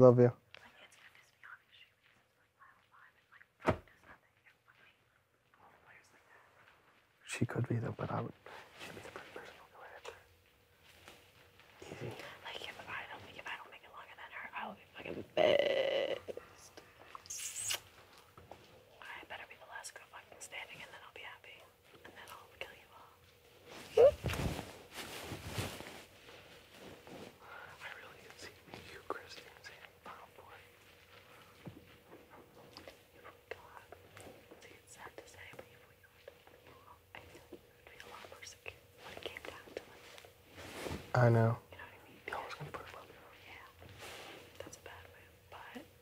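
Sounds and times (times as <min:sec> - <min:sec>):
soft whispered speech: 0:00.0 - 0:10.3, 0:11.7 - 0:15.4, 0:18.9 - 0:23.3, 0:27.4 - 0:31.4, 0:32.2 - 0:40.3, 0:41.1 - 0:43.9, 0:44.5 - 0:46.0
faint steady hum: 0:00.0 - 0:46.0
short hiss: 0:17.2 - 0:17.9.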